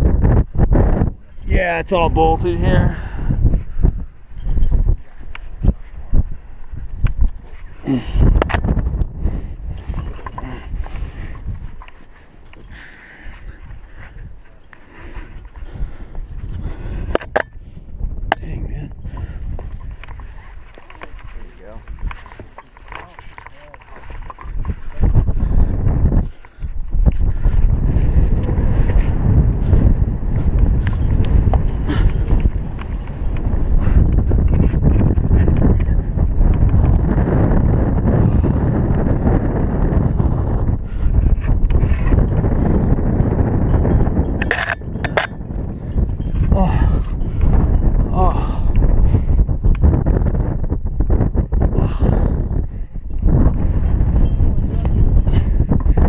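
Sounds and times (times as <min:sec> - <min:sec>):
wind buffeting a microphone: 0:00.0 - 0:56.0
climbing gear clicks: 0:06.6 - 0:16.2, 0:19.0 - 0:25.4, 0:26.2 - 0:37.2, 0:41.0 - 0:48.9.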